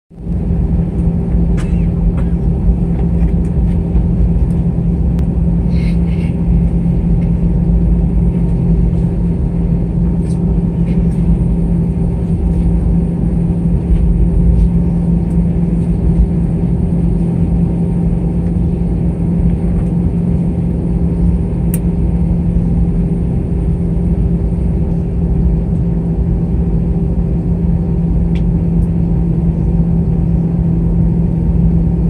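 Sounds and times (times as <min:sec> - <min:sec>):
jet engines low rumble: 0:00.1 - 0:32.0.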